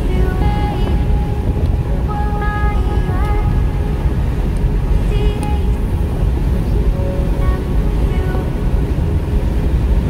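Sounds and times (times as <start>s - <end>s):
car road and engine rumble: 0.0s - 10.0s
faint background music: 0.0s - 10.0s.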